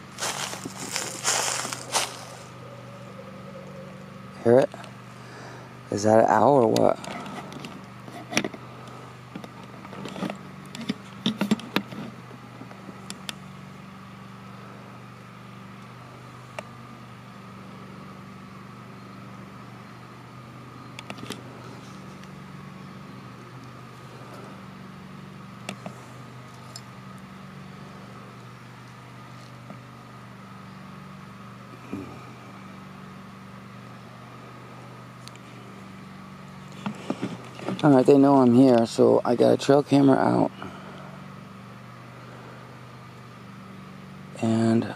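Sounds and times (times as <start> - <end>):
steady low drone: 0.0 - 44.9.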